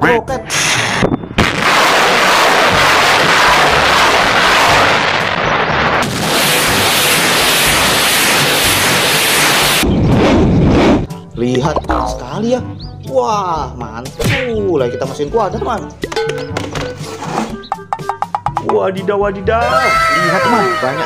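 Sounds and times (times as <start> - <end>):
rocket launch blasts: 0.5 - 11.1.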